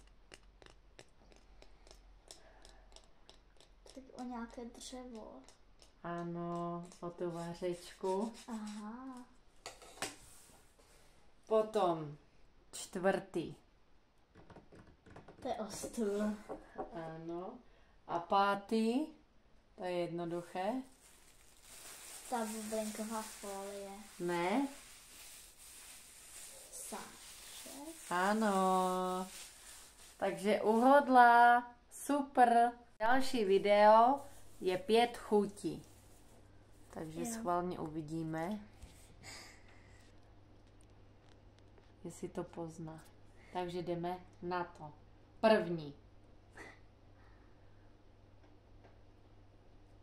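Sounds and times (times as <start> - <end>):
plastic bag crinkling: 20.8 - 30.8.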